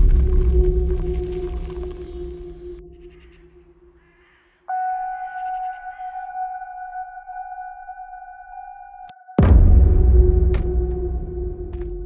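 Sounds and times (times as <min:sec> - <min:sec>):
deep cinematic hit: 0:00.0 - 0:03.0, 0:09.4 - 0:12.0.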